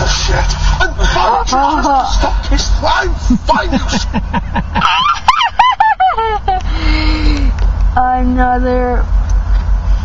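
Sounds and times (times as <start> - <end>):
high-pitched human laughter: 3.6 - 6.7.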